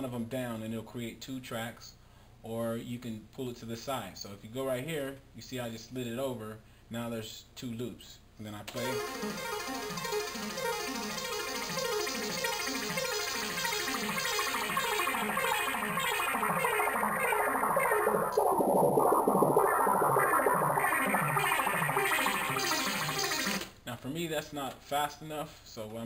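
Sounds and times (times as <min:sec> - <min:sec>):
repeating arpeggio loop: 0:08.8 - 0:23.8.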